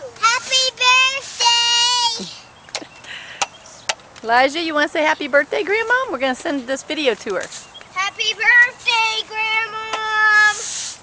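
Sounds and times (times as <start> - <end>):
girl singing in sing-song voice: 0.1 - 2.3.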